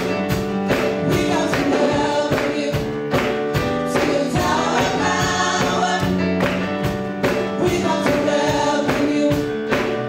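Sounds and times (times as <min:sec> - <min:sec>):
drums on a steady beat: 0:00.0 - 0:10.0
keyboard: 0:00.0 - 0:10.0
singers in harmony: 0:01.0 - 0:06.4, 0:07.5 - 0:09.8.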